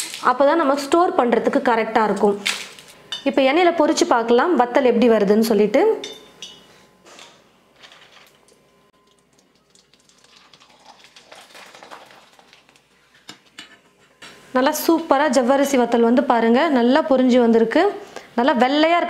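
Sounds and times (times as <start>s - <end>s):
oil sizzling: 9.0s - 13.2s.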